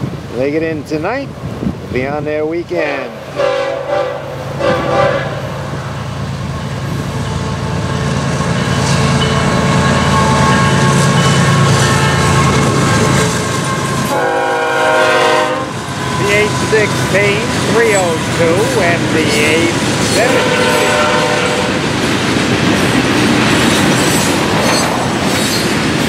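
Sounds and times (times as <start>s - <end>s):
diesel locomotives passing: 0.0s - 26.0s
train air horn blasts: 3.3s - 5.6s, 9.6s - 16.8s, 20.2s - 21.8s.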